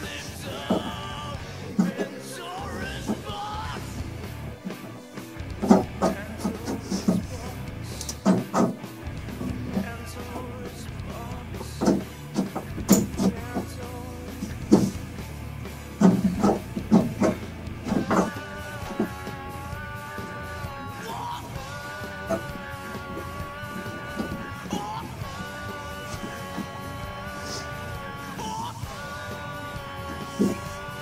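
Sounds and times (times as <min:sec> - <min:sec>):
rock music: 0:00.0 - 0:31.0.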